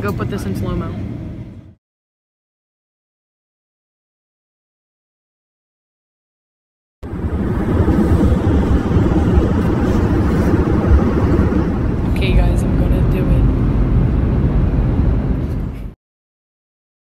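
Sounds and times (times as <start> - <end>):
airliner cabin engine rumble: 7.0 - 16.0.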